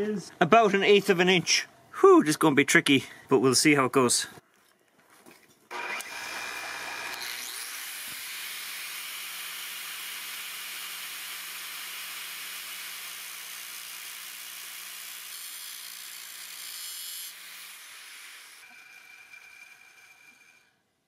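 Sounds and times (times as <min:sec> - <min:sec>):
lathe motor humming: 0:05.7 - 0:07.4
angle grinder grinding steel: 0:05.7 - 0:20.8.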